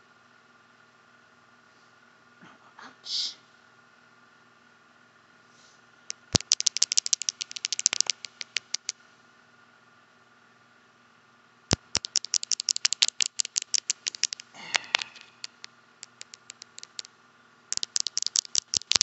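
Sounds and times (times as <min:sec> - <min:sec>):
rapid tapping on a phone: 0:06.1 - 0:08.9, 0:11.7 - 0:17.1, 0:17.7 - 0:19.0.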